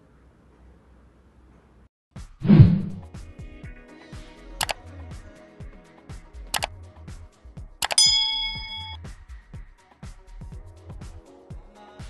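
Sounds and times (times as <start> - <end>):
background music with steady beat: 2.2 - 12.0
notification bell ding: 7.8 - 9.0.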